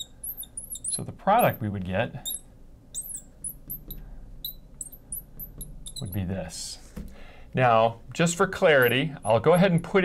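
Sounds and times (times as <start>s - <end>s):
marker squeaking on glass: 0.0s - 6.4s, 8.7s - 9.2s.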